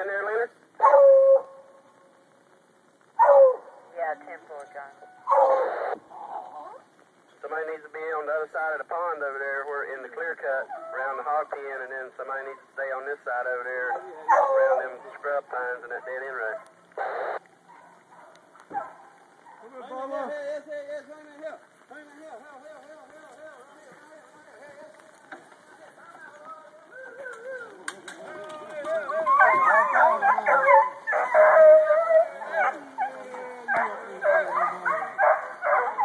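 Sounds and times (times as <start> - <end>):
hounds baying and howling: 0.8 - 1.6, 3.2 - 3.8, 5.2 - 6.9, 10.4 - 11.7, 13.7 - 19.8, 26.8 - 36.0.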